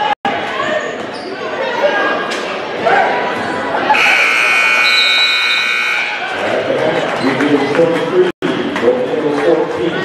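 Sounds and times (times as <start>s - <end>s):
scoreboard buzzer: 3.9s - 6.3s.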